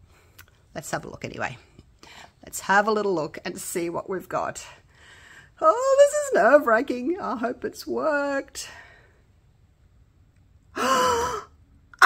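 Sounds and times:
woman gasping: 10.8s - 11.6s.

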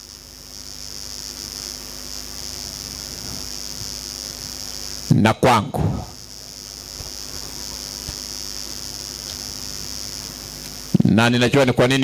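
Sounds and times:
high-pitched insect drone: 0.0s - 12.0s
faint ticks: 9.2s - 9.5s.

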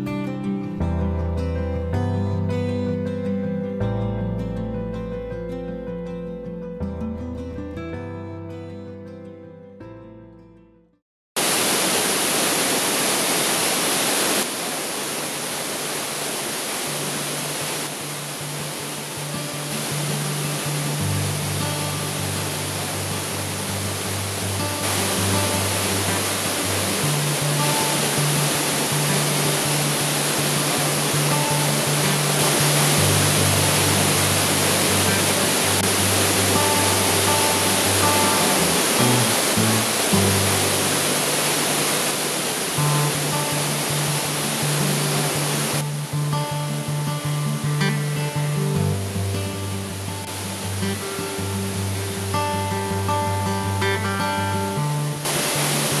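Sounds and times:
background music with low bass: 0.1s - 9.3s
river rushing over rocks: 11.4s - 47.1s, 48.2s - 56.0s.

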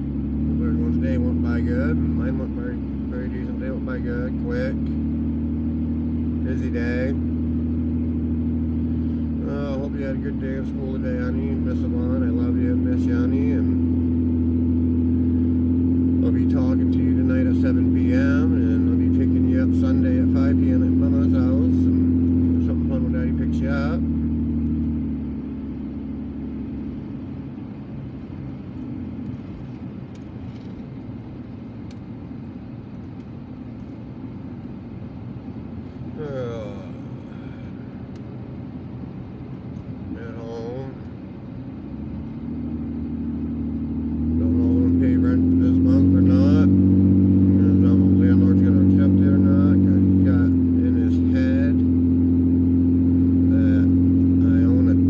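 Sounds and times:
car engine drone: 0.0s - 55.0s
tyre and road noise: 0.0s - 55.0s.

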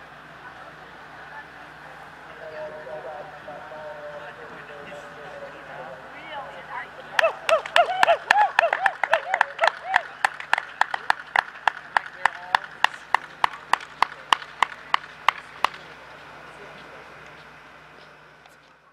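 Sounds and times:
voices cheering: 0.0s - 17.3s
hand clapping: 7.1s - 16.0s.

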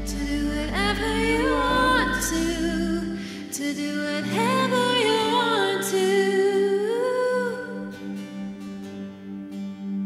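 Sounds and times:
soft sustained chord: 0.0s - 6.0s
woman singing a held note: 0.0s - 6.0s.

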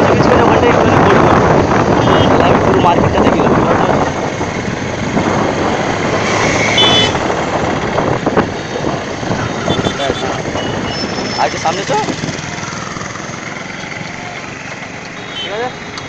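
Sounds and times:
road traffic noise: 0.0s - 16.0s.

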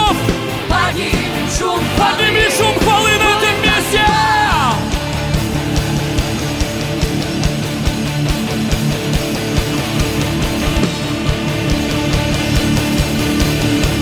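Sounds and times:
drums with kick-drum beat: 0.0s - 14.0s
electric guitar: 0.0s - 14.0s.

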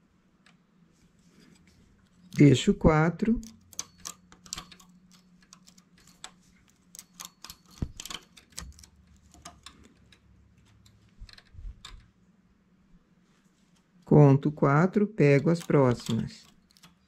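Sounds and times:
metallic clicks of knitting machine: 3.4s - 12.2s, 15.4s - 17.0s.

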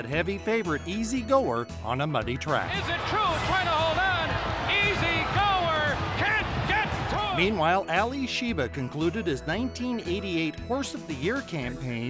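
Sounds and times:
music: 0.0s - 12.0s
race caller shouting excitedly: 2.7s - 7.6s.

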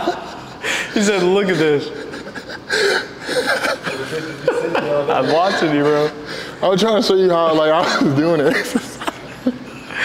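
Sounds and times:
men chuckling: 0.0s - 6.2s, 7.7s - 10.0s.

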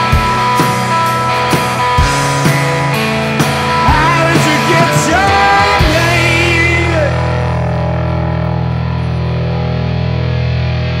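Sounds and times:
distorted electric guitar chord ringing: 0.0s - 11.0s.

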